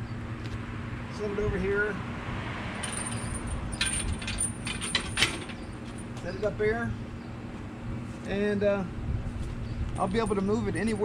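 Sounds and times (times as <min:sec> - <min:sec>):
metal hitch clicks and clanks: 0:02.8 - 0:06.1.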